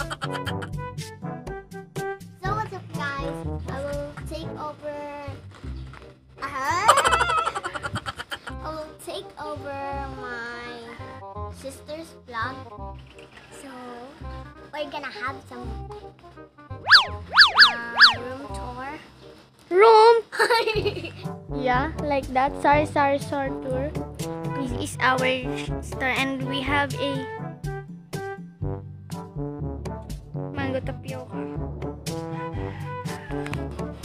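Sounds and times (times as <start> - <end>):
children's background music: 0.0 - 34.0
whistle swoops: 16.8 - 18.3
cartoon wobbling boing: 16.9 - 18.2.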